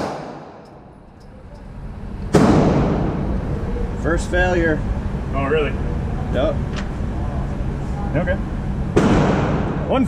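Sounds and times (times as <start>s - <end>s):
loud gunshot bang: 0.0s - 0.6s, 2.3s - 3.2s, 9.0s - 9.9s
gunshot echo indoors: 0.0s - 0.8s, 2.3s - 3.3s, 9.0s - 9.8s
steady noise: 0.0s - 10.0s.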